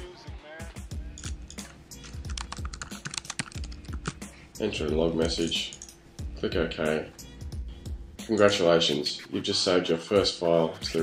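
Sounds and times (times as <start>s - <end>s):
typing on computer keyboard: 2.1s - 4.2s, 5.4s - 5.9s.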